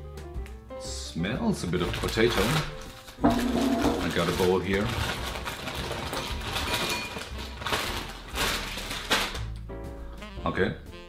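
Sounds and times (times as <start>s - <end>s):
plastic bag crinkling: 1.8s - 9.4s
chips clattering into a bowl: 1.8s - 9.5s.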